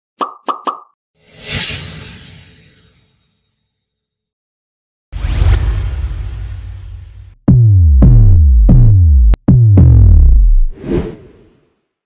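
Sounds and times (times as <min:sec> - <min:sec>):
whoosh sound effect: 0:10.7 - 0:11.5.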